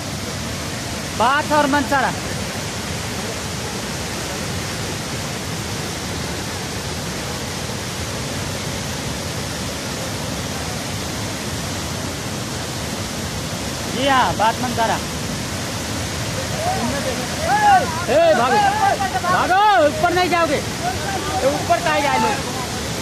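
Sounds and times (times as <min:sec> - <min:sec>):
floodwater rushing: 0:00.0 - 0:23.0.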